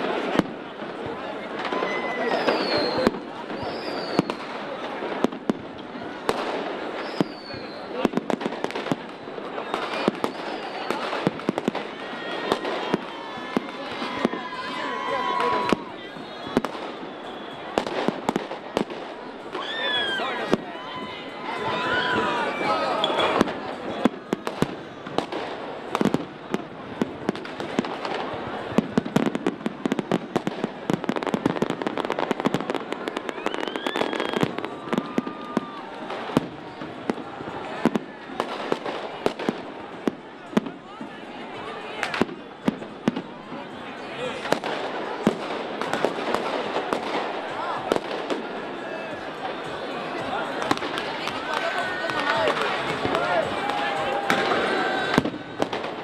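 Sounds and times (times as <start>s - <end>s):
crowd voices: 0.0s - 56.0s
fireworks bangs and crackles: 0.0s - 56.0s.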